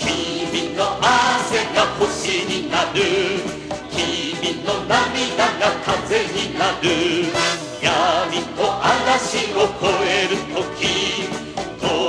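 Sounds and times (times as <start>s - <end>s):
backing chorus: 0.0s - 12.0s
sung vocals with vibrato: 0.0s - 12.0s
full band playing: 7.1s - 7.9s.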